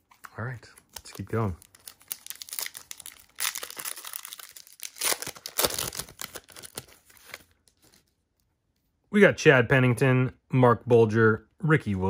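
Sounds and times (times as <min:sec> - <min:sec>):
foil wrapper tearing and crinkling: 0:01.4 - 0:07.5.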